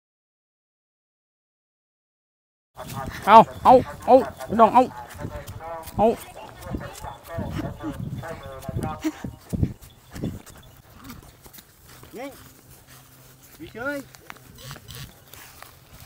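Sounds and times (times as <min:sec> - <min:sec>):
short voice calls: 0:02.8 - 0:09.7
footsteps crunching on straw: 0:02.8 - 0:16.0.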